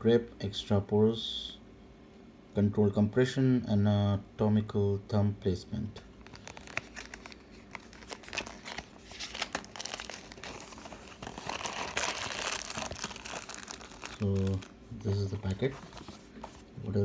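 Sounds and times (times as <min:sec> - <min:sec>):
plastic packet and cardboard crinkling: 0:06.2 - 0:17.0.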